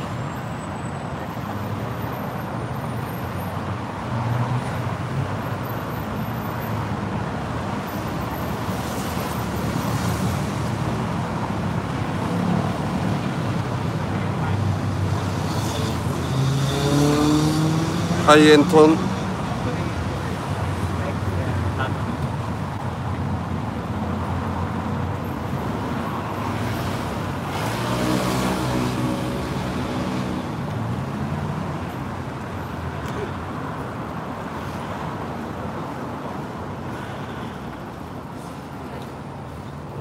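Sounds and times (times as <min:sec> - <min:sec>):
road traffic noise: 0:00.0 - 0:40.0
vehicle passing: 0:15.2 - 0:20.3, 0:26.2 - 0:31.7.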